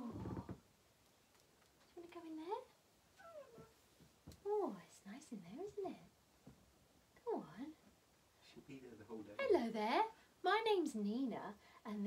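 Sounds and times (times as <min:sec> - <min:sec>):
cat meowing: 0:03.2 - 0:03.8.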